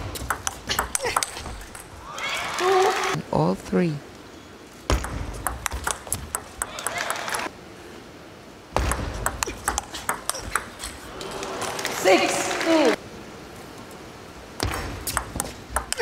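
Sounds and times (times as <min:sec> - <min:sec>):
table tennis ball clicks: 0:08.8 - 0:11.0.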